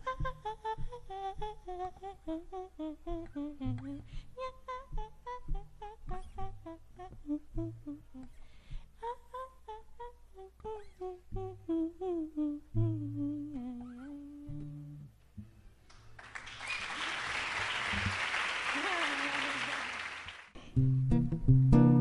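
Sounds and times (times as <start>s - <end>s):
woman humming: 0.0s - 8.4s, 9.0s - 15.1s, 18.8s - 19.9s
applause: 15.9s - 20.6s.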